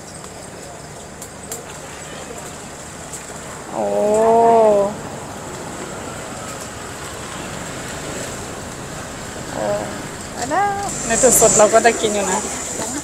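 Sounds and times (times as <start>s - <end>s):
water at a rolling boil: 0.0s - 13.0s.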